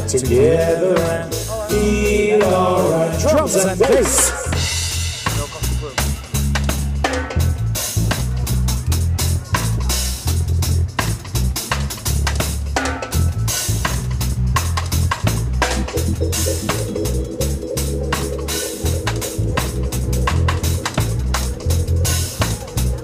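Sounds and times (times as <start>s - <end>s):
electric bass line: 0.0s - 23.0s
drum kit playing: 0.1s - 23.0s
held instrument notes: 15.6s - 22.9s.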